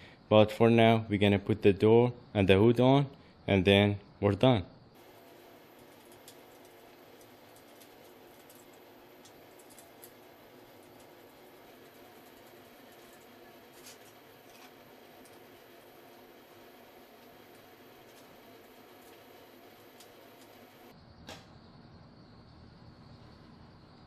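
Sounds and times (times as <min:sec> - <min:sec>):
low room hiss: 0:00.0 - 0:24.0.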